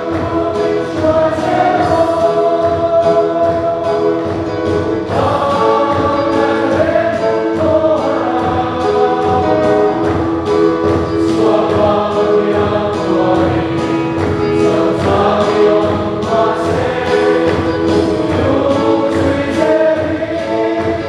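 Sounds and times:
choir singing a hymn: 0:00.0 - 0:21.0
instrumental accompaniment: 0:00.0 - 0:21.0.

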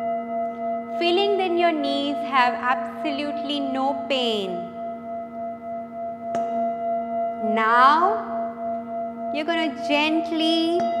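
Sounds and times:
singing bowl ringing: 0:00.0 - 0:11.0
padded mallet striking bowl: 0:04.7 - 0:09.9, 0:10.7 - 0:11.0.

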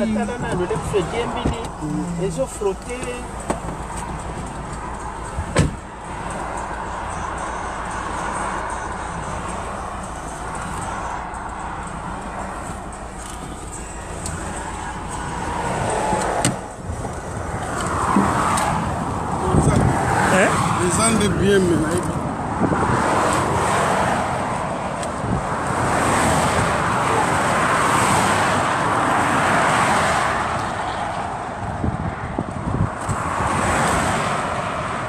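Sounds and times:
voices: 0:00.0 - 0:05.7, 0:19.2 - 0:22.2
vehicle road and engine rumble: 0:00.0 - 0:35.0.

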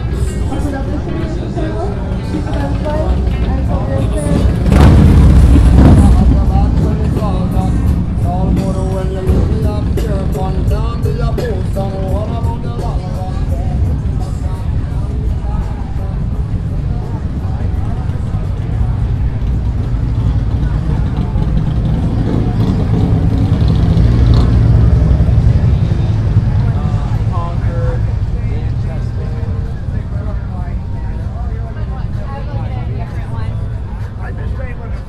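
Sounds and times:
crowd chatter: 0:00.0 - 0:35.0
motorcycle engines rumbling: 0:00.0 - 0:35.0.

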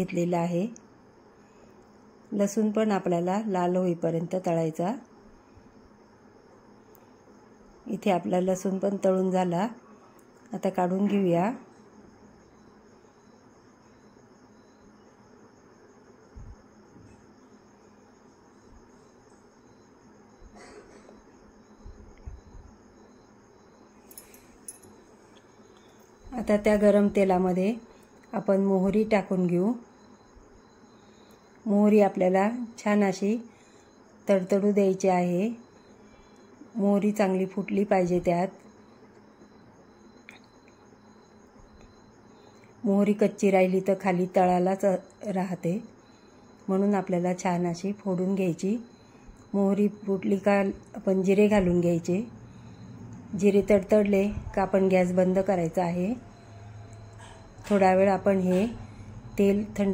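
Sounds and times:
faint high chirping: 0:44.8 - 0:59.9.

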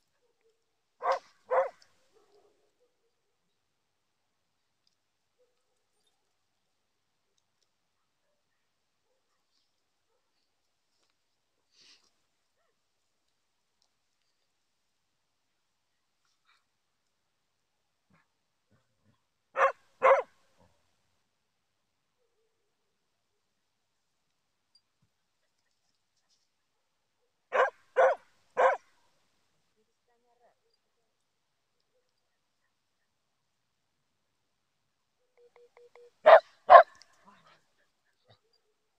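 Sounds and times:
dog barking: 0:00.1 - 0:03.2, 0:19.6 - 0:20.4, 0:27.5 - 0:28.9, 0:36.2 - 0:37.6.

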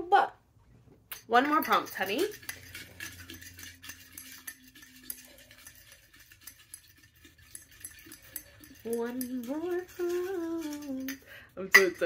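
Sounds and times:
paper slips rattling in glass jar: 0:01.6 - 0:12.0.

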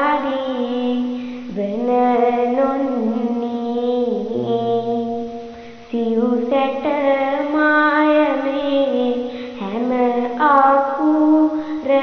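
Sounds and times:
girl chanting verse: 0:00.0 - 0:12.0.

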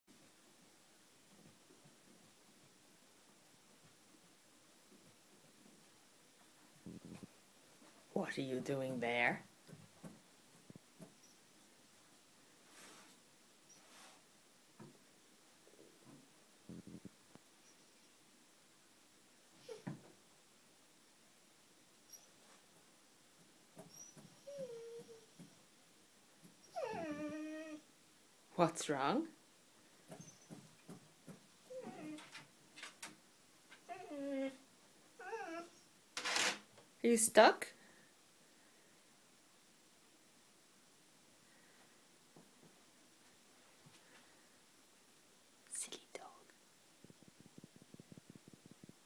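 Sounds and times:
dog whining: 0:23.8 - 0:25.4, 0:26.6 - 0:27.9, 0:30.1 - 0:30.6, 0:31.6 - 0:32.4, 0:33.8 - 0:34.6, 0:35.2 - 0:35.9
breathy whisper-like sound: 0:45.7 - 0:46.6.

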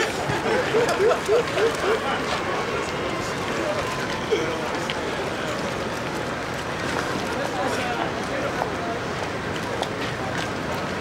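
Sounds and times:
outdoor background rush: 0:00.0 - 0:11.0
people talking quietly: 0:00.0 - 0:11.0.

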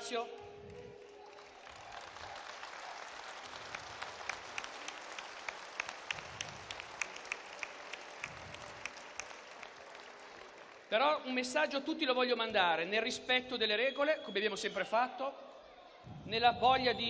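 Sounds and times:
audience applauding: 0:00.9 - 0:10.9.

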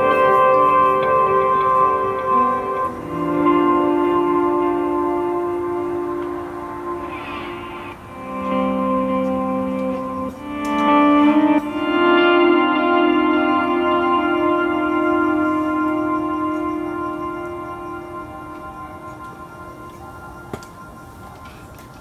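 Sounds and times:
keyboard chords: 0:00.0 - 0:22.0
lap steel guitar chords: 0:00.0 - 0:22.0.

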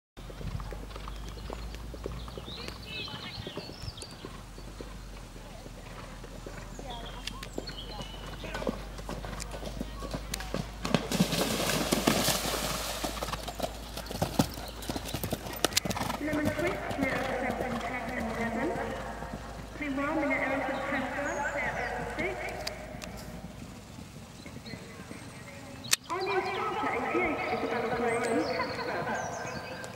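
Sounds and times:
horse hoofbeats on dirt: 0:00.2 - 0:29.9.

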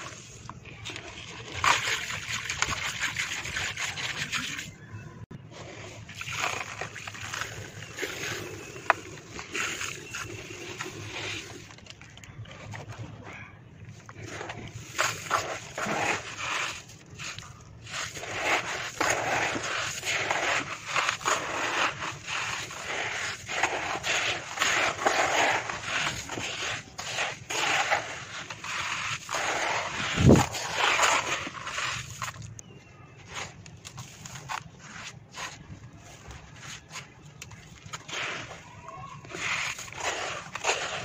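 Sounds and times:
dirt crunching by hand: 0:05.6 - 0:41.0.

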